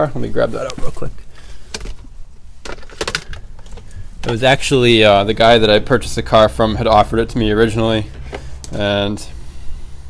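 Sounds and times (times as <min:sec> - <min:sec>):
light handling clicks and knocks: 0:01.7 - 0:04.5, 0:08.0 - 0:08.8.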